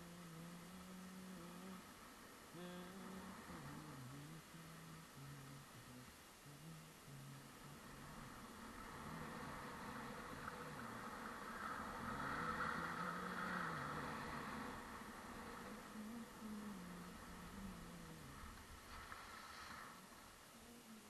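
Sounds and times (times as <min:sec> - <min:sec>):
skis hissing on snow: 0:18.8 - 0:20.1.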